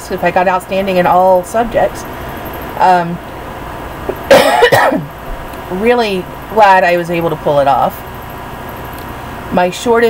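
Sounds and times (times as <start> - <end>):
woman coughing: 4.3 - 5.1.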